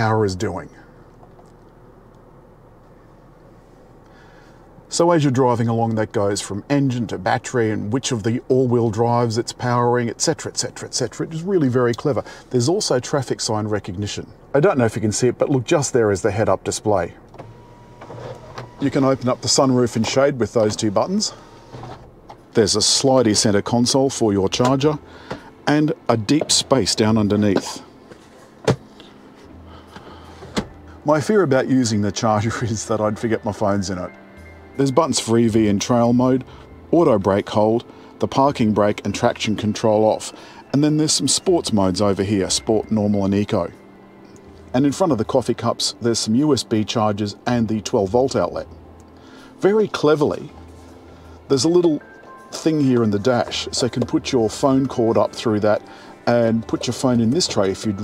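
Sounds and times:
low cabin hum: 0:00.0 - 0:58.0
console lid sliding: 0:17.4 - 0:19.5, 0:21.6 - 0:22.1.

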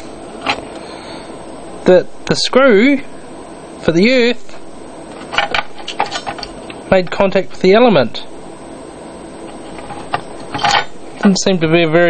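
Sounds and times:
low steady hiss: 0:00.0 - 0:12.0
handling of metal parts: 0:05.2 - 0:06.6, 0:09.4 - 0:11.0.

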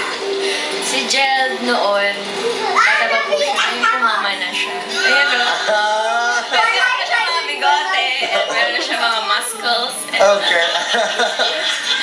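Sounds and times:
voices squealing and laughing: 0:02.9 - 0:12.0.

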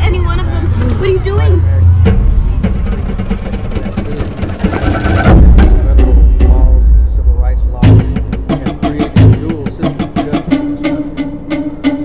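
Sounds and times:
steady low drone: 0:00.0 - 0:12.0
loud low hit with deep rumble: 0:01.9 - 0:09.6.

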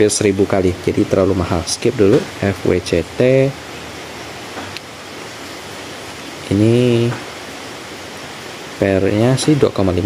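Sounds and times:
steady background hiss: 0:00.0 - 0:10.0
man's voice: 0:06.5 - 0:07.2.

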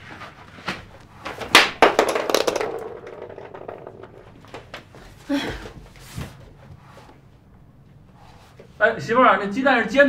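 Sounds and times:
sharp knocks and clatters: 0:00.7 - 0:04.9.

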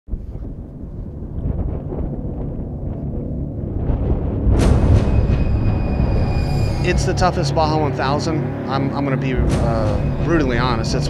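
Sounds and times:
low rumble: 0:00.1 - 0:11.0
hissing swell: 0:04.6 - 0:11.0.

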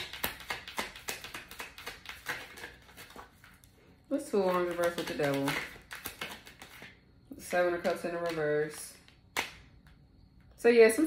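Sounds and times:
cards being shuffled: 0:00.0 - 0:03.8, 0:04.4 - 0:07.0.

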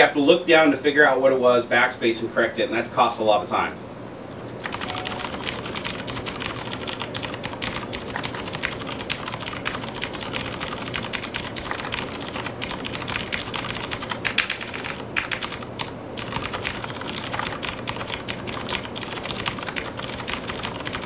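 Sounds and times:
mechanical keyboard typing: 0:04.6 - 0:21.0.

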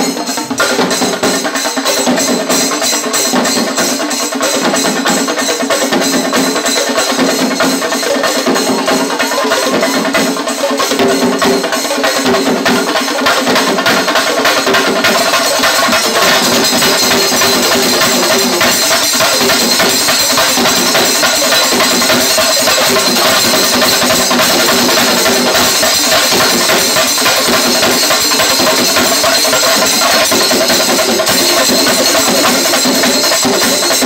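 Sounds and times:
chenda drums beaten with sticks: 0:00.0 - 0:34.0.

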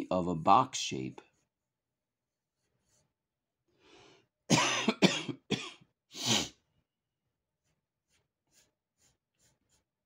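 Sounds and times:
man coughing: 0:04.5 - 0:05.9.

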